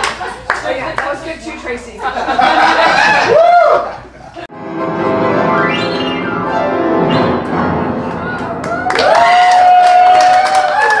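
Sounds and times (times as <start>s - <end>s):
audience cheering and clapping: 2.9s - 4.0s, 7.4s - 11.0s
person whooping: 3.2s - 4.0s, 8.2s - 11.0s.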